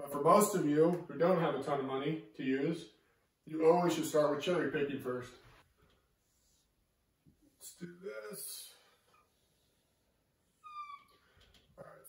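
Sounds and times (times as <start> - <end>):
short high squeak: 10.6 - 11.3.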